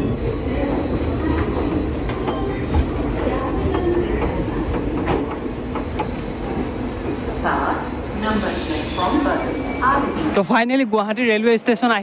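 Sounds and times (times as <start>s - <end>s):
train wheels rumbling on rail: 0.0s - 10.3s.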